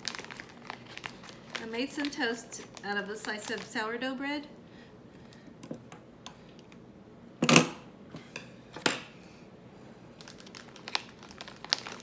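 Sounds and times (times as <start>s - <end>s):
plastic bag crinkling: 0.0s - 4.0s, 10.2s - 12.0s
small crackles and clicks: 10.2s - 12.0s.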